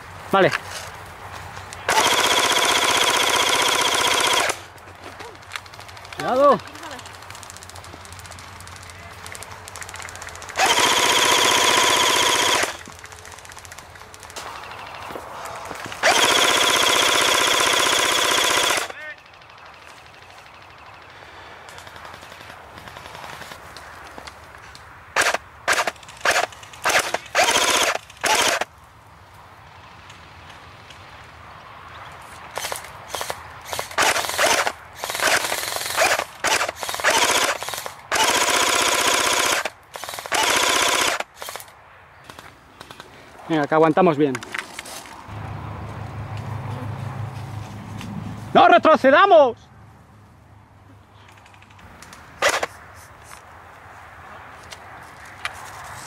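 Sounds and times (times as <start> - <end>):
airsoft rifles firing bursts: 1.9 - 4.8, 5.6 - 15.1, 15.8 - 23.4, 25.2 - 28.7, 32.5 - 43.0, 52.4 - 52.8.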